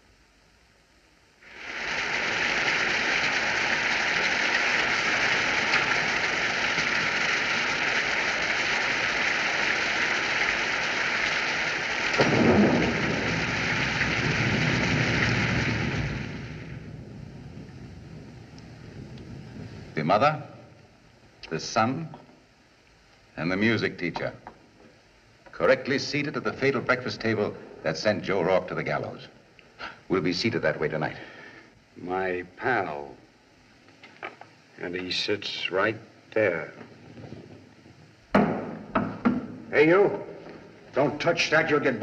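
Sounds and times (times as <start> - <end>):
heavy rain: 1.4 - 21.0
thunder rumble: 1.5 - 21.1.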